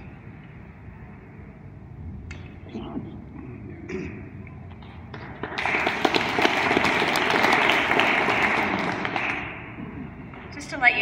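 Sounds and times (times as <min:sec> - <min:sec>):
audience applauding: 0:05.4 - 0:09.9.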